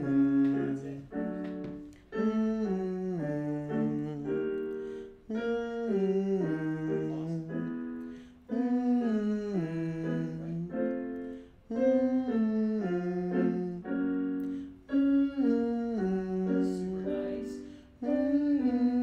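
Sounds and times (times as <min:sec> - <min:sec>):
man humming along: 0:00.0 - 0:01.0, 0:02.2 - 0:04.4, 0:05.3 - 0:07.7, 0:08.5 - 0:10.9, 0:14.9 - 0:19.0
piano descending note patterns: 0:00.0 - 0:19.0.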